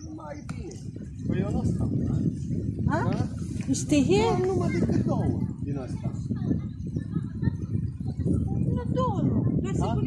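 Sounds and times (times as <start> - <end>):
people talking: 0.0 - 10.0
wind buffeting microphone: 0.0 - 10.0.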